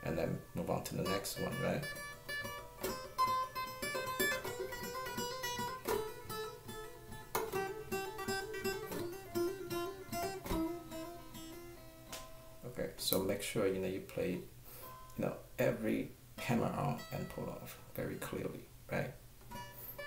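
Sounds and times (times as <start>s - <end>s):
acoustic guitar hammer-ons and pull-offs: 0.2s - 12.4s.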